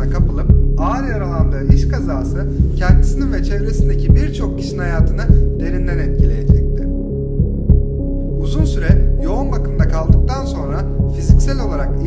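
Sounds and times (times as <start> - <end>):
heartbeat-like bass thumps: 0.0 - 11.7
dark music low drone: 0.0 - 12.0.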